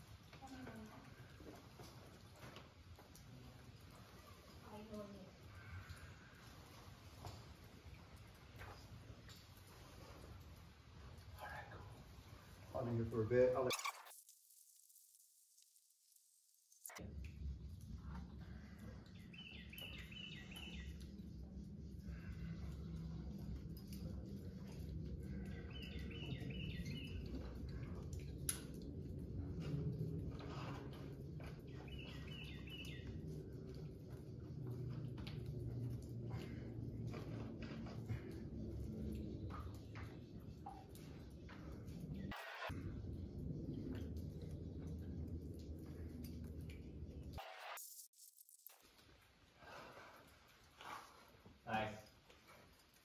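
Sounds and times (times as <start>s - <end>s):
steady low rumble: 16.9s - 47.4s
songbird chirping: 19.1s - 21.2s, 25.3s - 27.4s, 31.4s - 33.3s.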